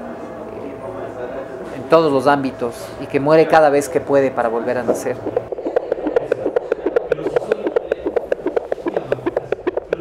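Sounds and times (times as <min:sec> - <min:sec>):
rapid short clicks: 0:05.2 - 0:10.0.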